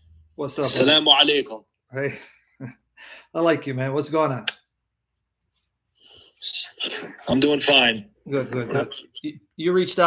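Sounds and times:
person whispering: 6.4s - 9.3s.

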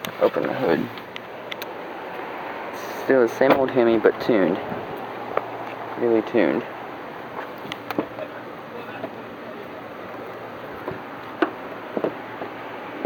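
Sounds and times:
outdoor background noise: 0.0s - 13.0s.

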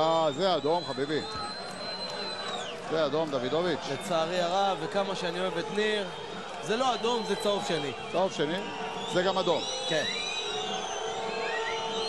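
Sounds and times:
fans' horns and whistles: 0.0s - 2.8s, 3.8s - 12.0s
stadium crowd din: 0.0s - 12.0s.

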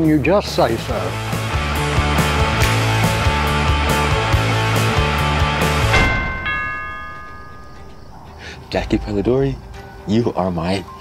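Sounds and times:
doorbell chime ringing: 5.9s - 8.6s.

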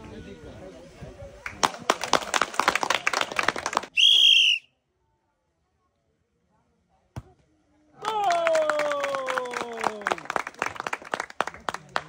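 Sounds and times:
people clapping: 1.4s - 4.0s, 8.0s - 12.0s
referee whistle blast: 4.0s - 4.7s.

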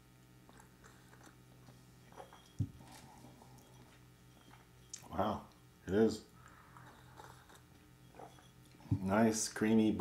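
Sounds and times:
person sipping coffee: 0.4s - 5.1s, 6.4s - 8.8s.

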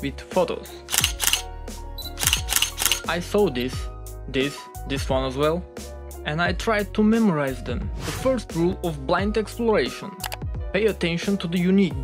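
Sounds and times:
background music: 0.0s - 12.0s
camera shutter clicks: 0.9s - 1.5s, 2.1s - 3.1s.

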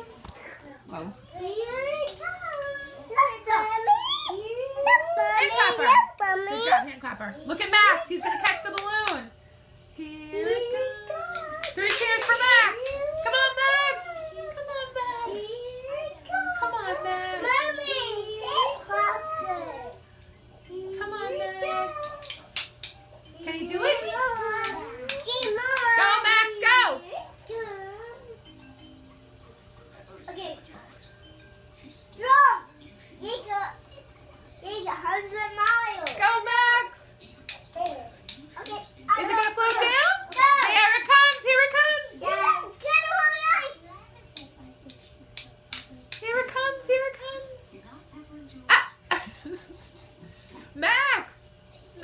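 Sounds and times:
toddler babbling: 0.4s - 6.9s, 14.0s - 20.0s.

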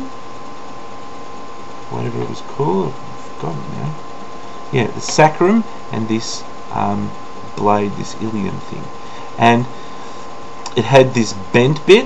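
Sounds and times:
background hiss: 0.0s - 12.0s
thin electrical whine: 0.0s - 12.0s.

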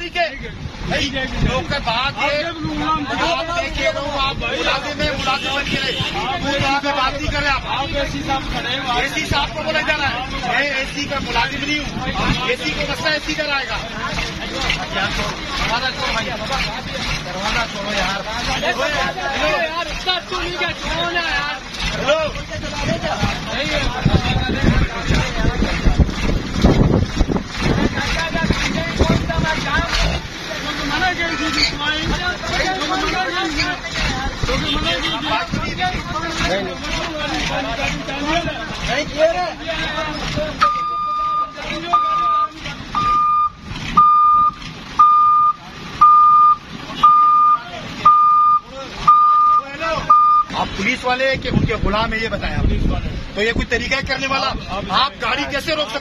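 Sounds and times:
men talking: 0.0s - 56.0s
wind on microphone: 22.5s - 30.3s, 51.3s - 54.8s
crane warning beeper: 40.6s - 50.5s.

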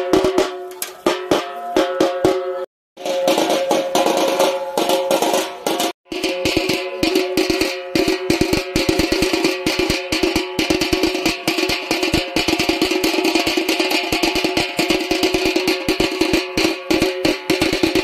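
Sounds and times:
rapid drumming: 0.0s - 18.0s.

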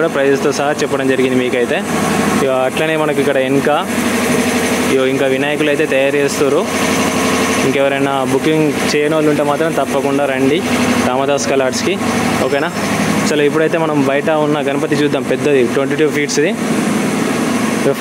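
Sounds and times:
person speaking: 0.0s - 16.7s
steady low hum: 0.0s - 18.0s.

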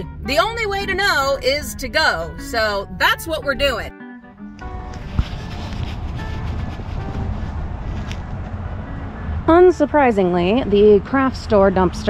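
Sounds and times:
faint background music: 0.0s - 12.0s
low outdoor rumble: 4.5s - 12.0s.

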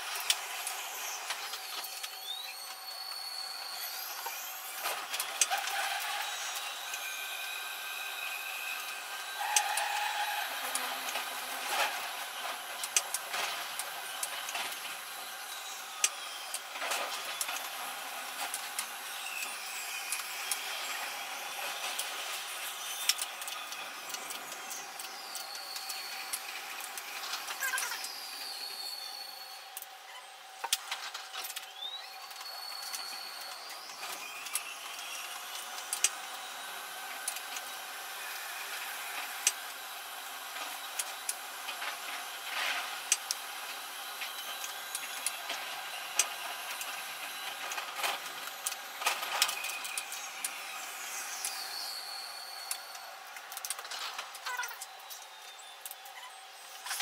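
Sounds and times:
high whine: 0.0s - 57.0s
train running noise: 0.0s - 57.0s.

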